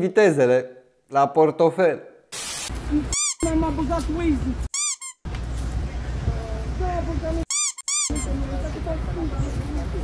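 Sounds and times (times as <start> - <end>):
high-pitched squeaks: 3.1 - 3.6, 4.7 - 5.2, 7.4 - 8.4.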